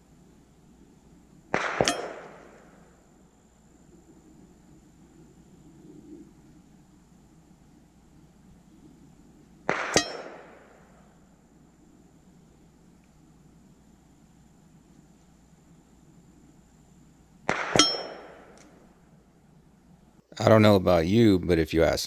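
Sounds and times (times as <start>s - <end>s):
bullets hitting steel gong: 1.6s - 2.6s, 9.7s - 10.8s, 17.5s - 18.6s.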